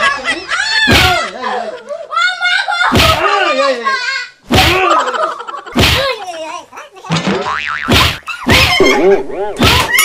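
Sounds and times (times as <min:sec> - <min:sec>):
loud stick whacks: 0:04.5 - 0:04.8, 0:05.8 - 0:06.1, 0:07.2 - 0:08.7, 0:09.6 - 0:09.9
springy boing sound effects: 0:07.2 - 0:08.8.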